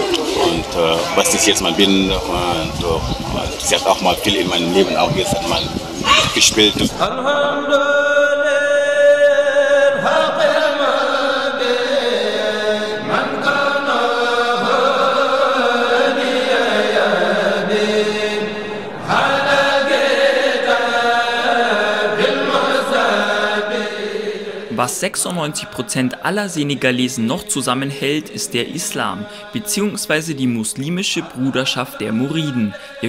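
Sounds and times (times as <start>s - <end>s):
person chanting: 0.0s - 33.0s.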